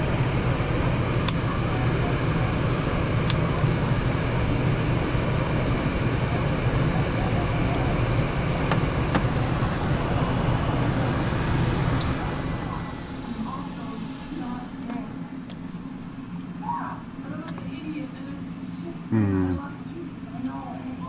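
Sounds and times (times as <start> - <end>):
furnace blower humming: 0.0 - 21.0.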